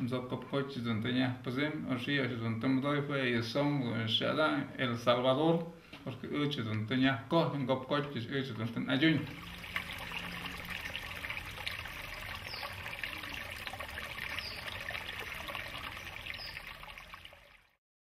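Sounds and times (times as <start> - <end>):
stream trickling over sticks: 9.2 - 17.8
faint high chirps: 12.2 - 16.8.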